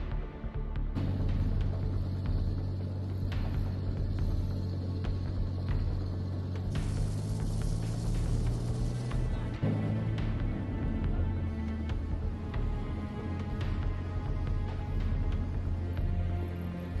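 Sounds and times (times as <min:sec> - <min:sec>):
armoured vehicle engines rumbling: 0:00.0 - 0:17.0
background music: 0:00.0 - 0:17.0
hiss: 0:01.9 - 0:10.0.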